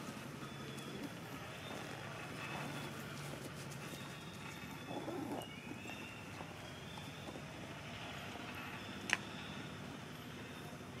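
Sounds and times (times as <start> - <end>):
outdoor ambient noise: 0.0 - 11.0.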